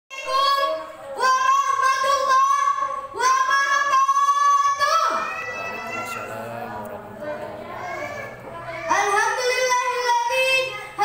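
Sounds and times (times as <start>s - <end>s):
boy singing through microphone: 0.1s - 11.0s.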